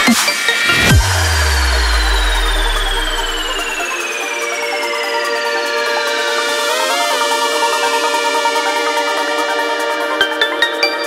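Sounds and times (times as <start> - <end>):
high sweep falling in pitch: 0.6 - 4.1
sustained synth chord: 0.6 - 4.4
deep bass note: 0.7 - 3.8.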